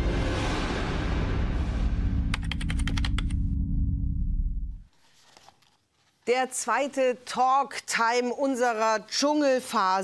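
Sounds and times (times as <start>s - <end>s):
keyboard typing: 2.3s - 3.4s.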